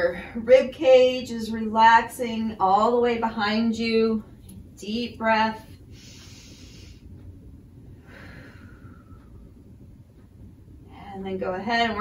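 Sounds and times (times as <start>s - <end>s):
woman breathing in: 5.9s - 7.2s, 8.0s - 9.4s.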